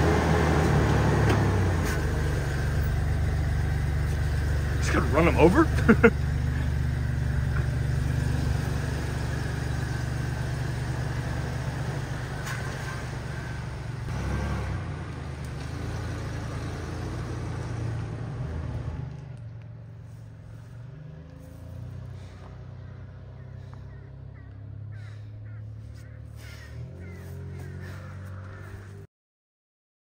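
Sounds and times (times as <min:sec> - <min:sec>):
pickup truck engine driving off: 0:00.0 - 0:28.9.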